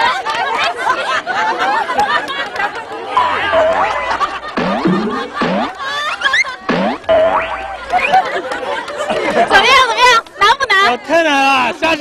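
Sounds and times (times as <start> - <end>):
people laughing: 0.6 - 7.0, 7.6 - 9.7.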